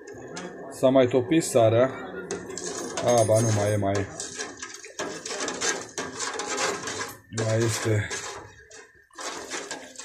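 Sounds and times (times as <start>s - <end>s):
metal skimmer scraping pot: 0.0s - 10.0s.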